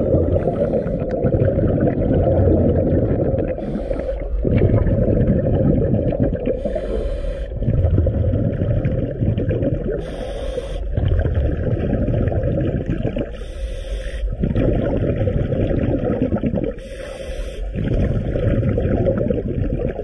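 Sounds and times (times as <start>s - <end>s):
gurgle of exhaled bubbles: 0.0s - 13.5s, 14.2s - 20.0s
regulator inhale hiss: 0.4s - 1.2s, 3.6s - 4.4s, 6.6s - 7.6s, 10.0s - 11.0s, 13.3s - 14.3s, 16.8s - 17.7s.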